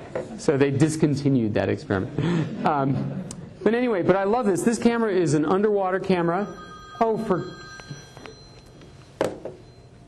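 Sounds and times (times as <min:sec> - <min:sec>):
mobile phone ringtone: 0:06.2 - 0:10.0.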